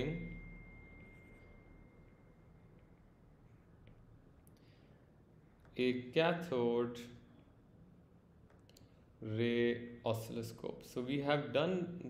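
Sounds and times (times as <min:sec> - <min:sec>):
thin high tone: 0:00.0 - 0:03.7.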